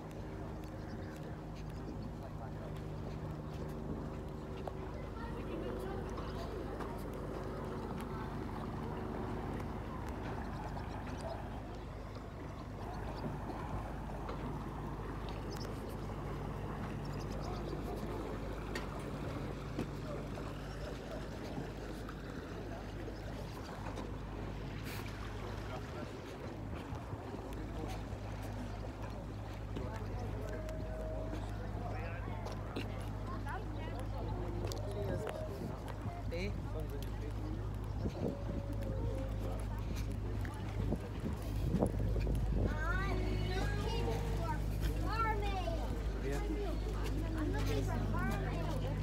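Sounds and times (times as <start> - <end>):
motorboat engine droning: 0.0 - 49.0
people talking: 0.1 - 49.0.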